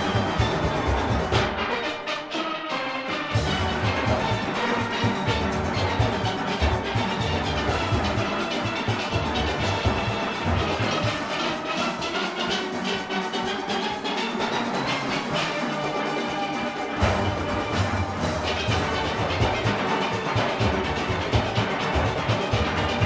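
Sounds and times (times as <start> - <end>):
drum kit and congas: 0.0 - 1.8, 3.3 - 23.0
massed steelpans playing: 0.0 - 23.0.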